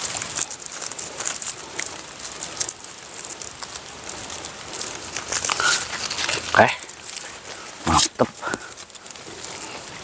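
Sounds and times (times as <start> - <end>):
leaves rustling: 0.0 - 10.0
paper tag crackling: 0.0 - 10.0.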